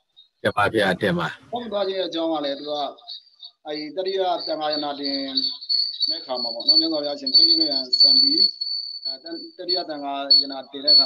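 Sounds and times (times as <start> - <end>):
man speaking: 0.5 - 2.9, 3.7 - 5.5, 6.1 - 8.5, 9.1 - 11.0
steady high-pitched whine: 0.6 - 11.0.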